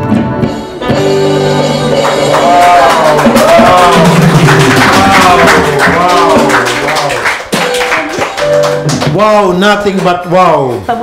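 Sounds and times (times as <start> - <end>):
electronic keyboard chords: 0.0 - 10.3.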